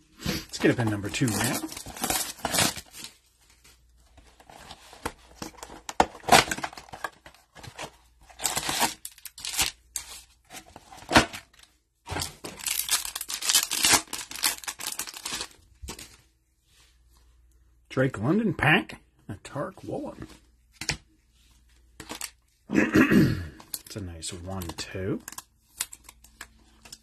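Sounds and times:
foil packs ripping and crinkling: 0.6 - 3.2, 8.3 - 10.1, 12.5 - 15.6
cardboard box tearing: 1.2 - 2.9.

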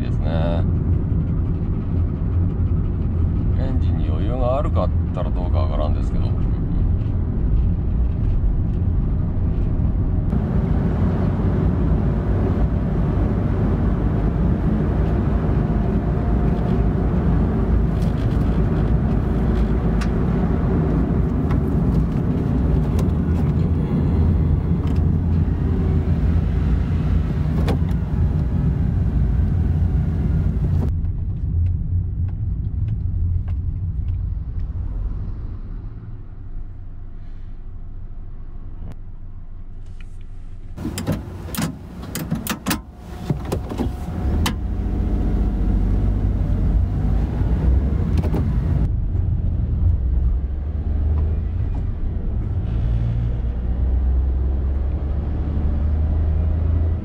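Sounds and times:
road noise inside vehicle: 0.0 - 57.0
van engine running: 6.0 - 34.4, 40.8 - 49.0.

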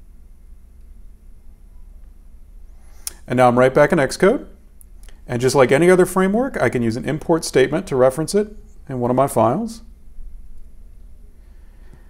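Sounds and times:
faint hiss: 0.0 - 12.0
steady low hum: 0.0 - 12.0.

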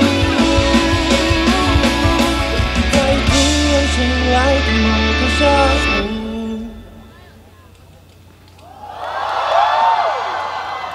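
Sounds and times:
audience cheering and screaming: 8.6 - 10.9.

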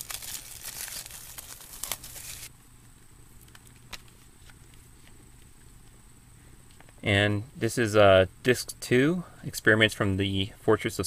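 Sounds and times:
shrink wrap crinkling and tearing: 0.0 - 2.5.

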